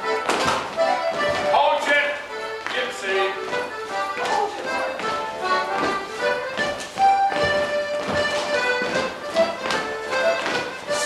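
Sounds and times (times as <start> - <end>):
folk dance tune: 0.0 - 11.0.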